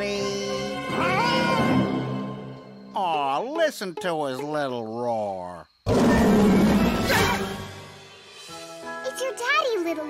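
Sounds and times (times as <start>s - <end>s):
background music: 0.0s - 4.8s, 5.9s - 10.0s.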